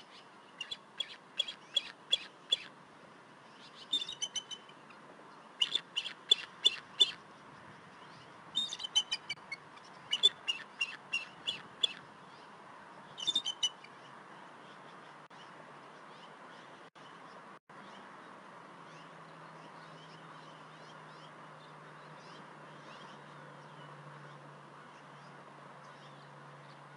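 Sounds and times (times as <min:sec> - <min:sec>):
eagle high piping chirps: 0:03.9 - 0:04.7, 0:08.6 - 0:12.0, 0:13.2 - 0:13.9.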